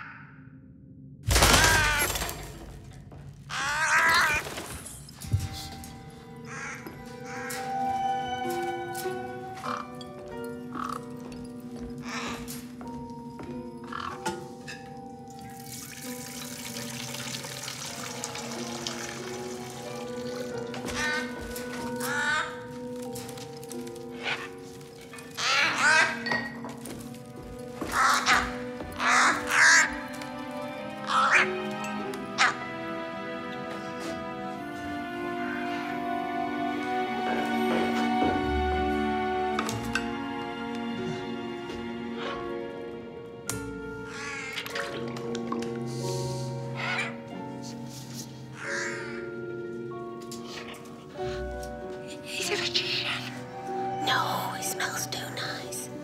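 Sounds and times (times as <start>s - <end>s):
film score of held notes: 0.0s - 56.0s
crow cawing: 1.4s - 2.4s, 3.5s - 4.6s, 6.4s - 8.4s, 9.6s - 10.0s, 10.6s - 11.2s, 12.0s - 12.6s, 13.8s - 14.3s, 20.8s - 22.8s, 25.2s - 26.6s, 27.8s - 30.3s, 31.0s - 32.7s, 44.1s - 44.7s, 46.7s - 47.3s, 48.6s - 49.5s.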